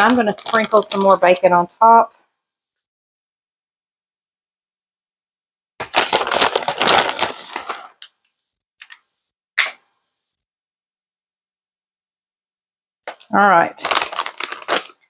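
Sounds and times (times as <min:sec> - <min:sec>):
plastic pouch crinkling: 0:00.0 - 0:01.4, 0:05.8 - 0:08.2, 0:08.8 - 0:09.0, 0:13.1 - 0:15.0.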